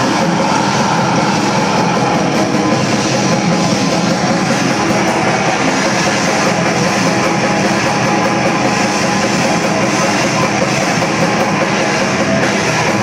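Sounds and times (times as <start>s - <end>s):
fast drumming: 0.0s - 13.0s
metal band playing live: 0.0s - 13.0s.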